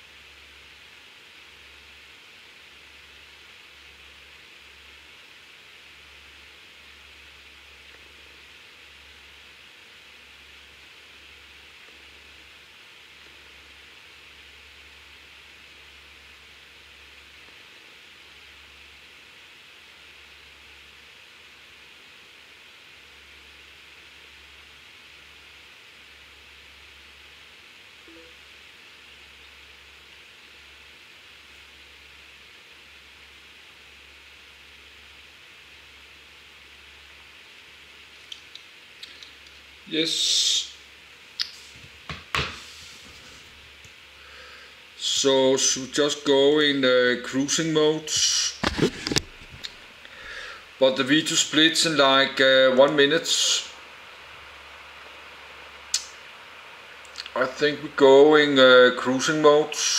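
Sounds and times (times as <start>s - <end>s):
room noise hiss: 0.0s - 59.9s.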